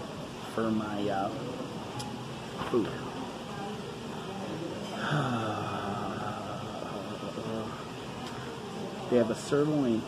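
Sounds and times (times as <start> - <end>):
faint indistinct voices: 0.0 - 10.0
ventilation hum: 0.0 - 10.0.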